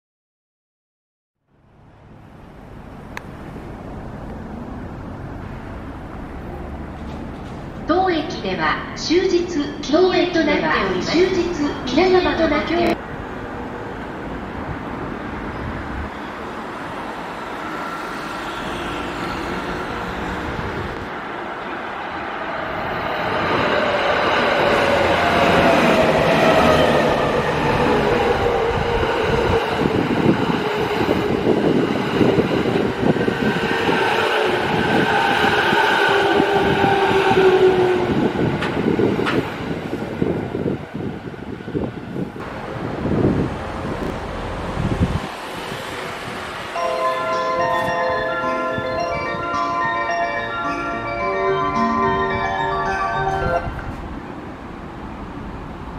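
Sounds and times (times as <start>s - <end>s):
wheels clattering on rail joints: 6.8s - 7.9s.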